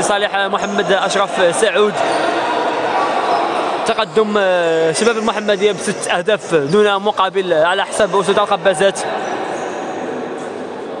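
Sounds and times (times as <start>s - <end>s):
echoing sports hall din: 0.0s - 11.0s.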